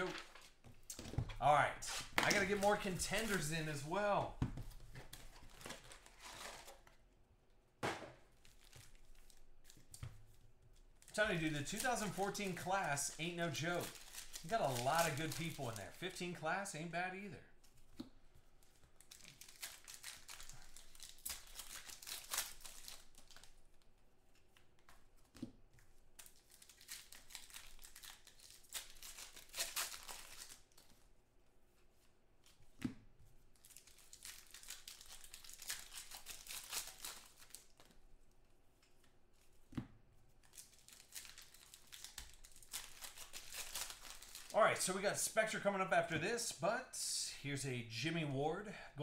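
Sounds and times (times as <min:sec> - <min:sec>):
foil wrappers tearing and crinkling: 0:01.9 - 0:03.9, 0:11.0 - 0:16.4, 0:19.0 - 0:23.6, 0:26.2 - 0:30.9, 0:33.6 - 0:37.9, 0:40.4 - 0:44.6.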